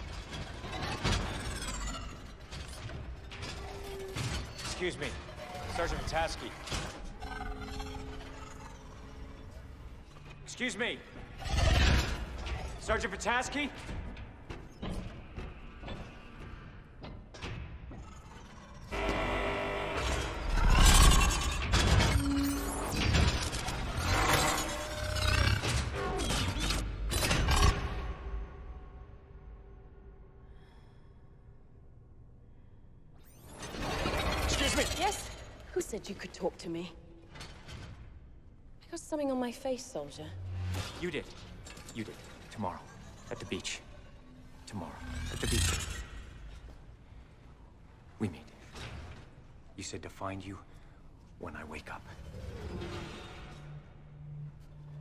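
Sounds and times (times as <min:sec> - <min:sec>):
metallic clanks and whirs: 0:17.0 - 0:28.2, 0:40.1 - 0:46.9.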